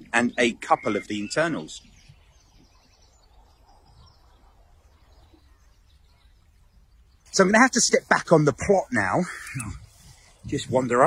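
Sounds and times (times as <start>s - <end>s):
faint birdsong: 0.0s - 11.0s.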